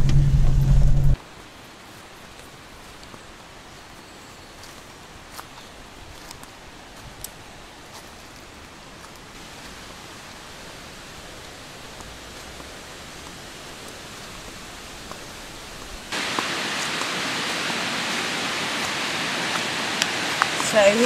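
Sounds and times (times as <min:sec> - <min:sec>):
river water rushing over rocks: 0:06.5 - 0:21.0.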